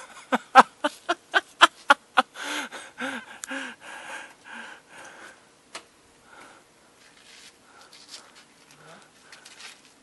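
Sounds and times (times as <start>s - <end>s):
person breathing hushed: 2.3s - 5.4s.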